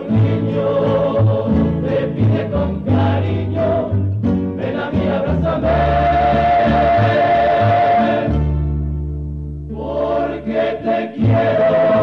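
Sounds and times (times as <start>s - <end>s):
plucked strings: 0.0s - 9.8s
chorus singing a slow ballad: 0.0s - 12.0s.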